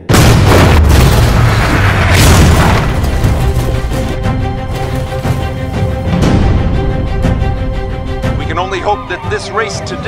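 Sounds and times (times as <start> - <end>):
loud boom: 0.0 - 3.1
film score music: 0.0 - 10.0.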